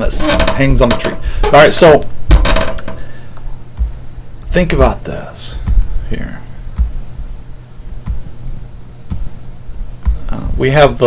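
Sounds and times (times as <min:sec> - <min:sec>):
dull low thumps: 0:00.0 - 0:11.0
faint high chirping: 0:00.0 - 0:11.0
steady low hum: 0:00.0 - 0:11.0.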